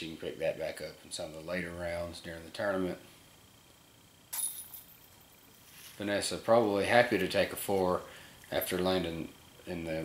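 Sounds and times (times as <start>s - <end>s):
disc striking metal chains: 4.3s - 5.0s.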